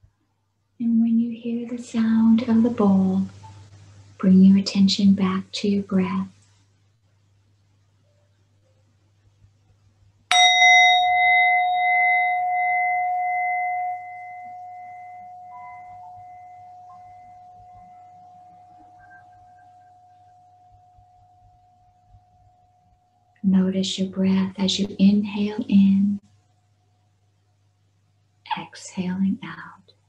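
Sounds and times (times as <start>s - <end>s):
singing bowl ringing: 10.3s - 23.0s.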